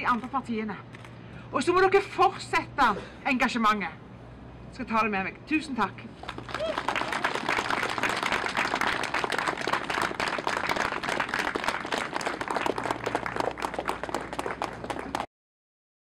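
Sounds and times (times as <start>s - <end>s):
crowd applauding: 6.2s - 15.3s.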